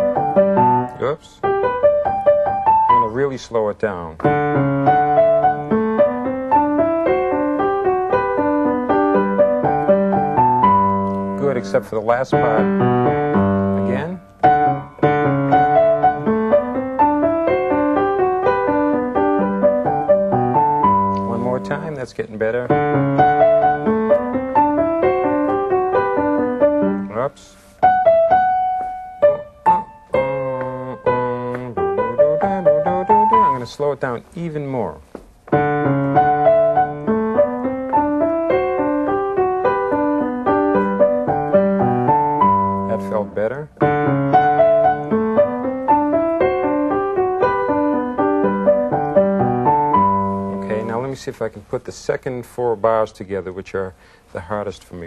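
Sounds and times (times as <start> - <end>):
keyboard practice passage: 0.0 - 3.4, 4.2 - 34.1, 35.5 - 51.2.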